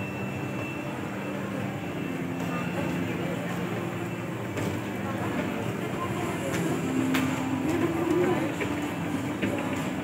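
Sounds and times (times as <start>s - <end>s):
escalator hum and rumble: 0.0s - 10.0s.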